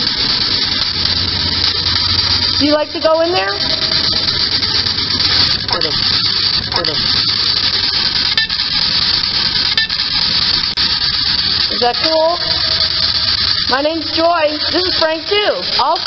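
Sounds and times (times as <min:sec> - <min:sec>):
clicks: 0:00.0 - 0:02.8, 0:03.6 - 0:15.3
clipped voice fragments: 0:00.0 - 0:16.0.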